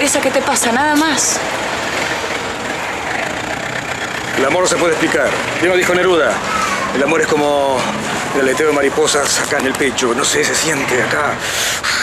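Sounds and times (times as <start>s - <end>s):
outdoor rushing hum: 0.0s - 12.0s.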